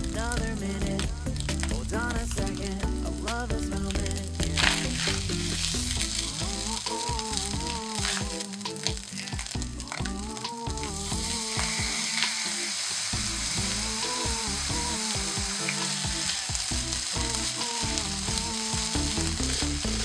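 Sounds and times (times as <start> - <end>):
fried rice sizzling in a pan: 0.0 - 20.0
pop song: 0.0 - 20.0.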